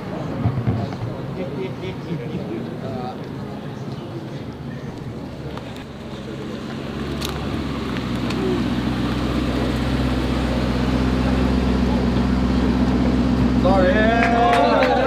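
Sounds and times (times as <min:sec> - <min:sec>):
voices: 0:00.0 - 0:15.0
car engine at low speed: 0:02.7 - 0:15.0.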